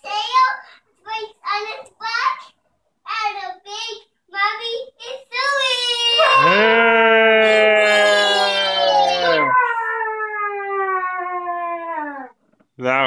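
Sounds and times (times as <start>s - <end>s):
person's long vocal call: 6.2s - 8.4s.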